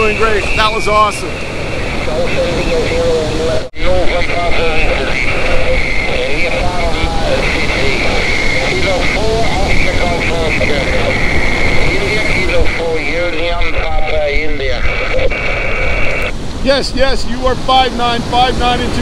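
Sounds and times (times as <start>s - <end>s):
whining band of noise: 0.0s - 16.6s
distorted radio voice: 0.0s - 19.0s
radio hiss: 0.0s - 19.0s.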